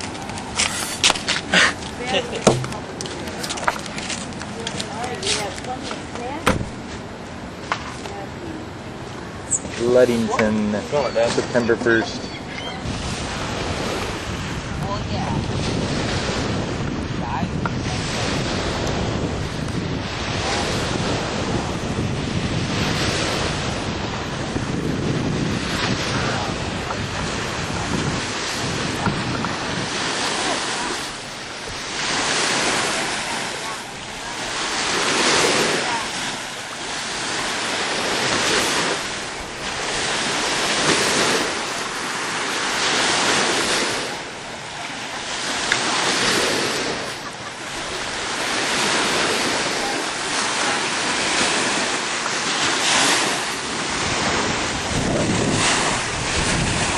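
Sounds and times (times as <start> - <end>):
waves washing on sand beach: 0.0 - 56.9
wind buffeting microphone: 0.0 - 56.9.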